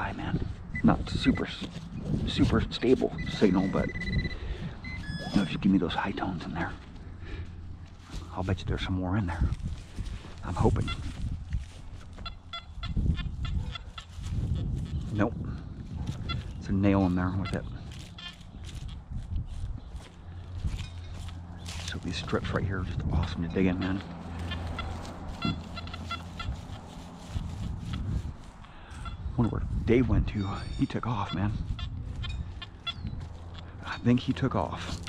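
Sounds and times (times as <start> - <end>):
metal detector beeping: 0.7 - 6.7, 12.2 - 13.3, 30.4 - 33.7
metal detector short beeps: 3.0 - 5.7.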